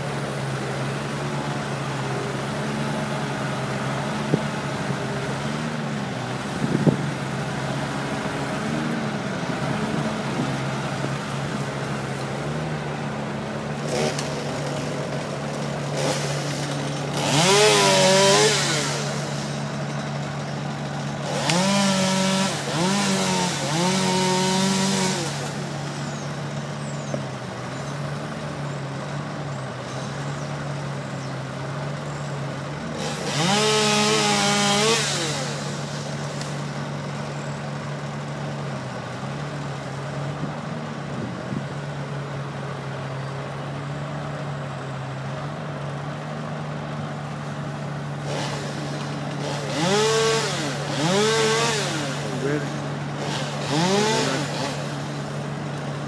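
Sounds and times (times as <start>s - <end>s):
chainsaw revving: 0.0s - 42.1s, 45.9s - 56.0s.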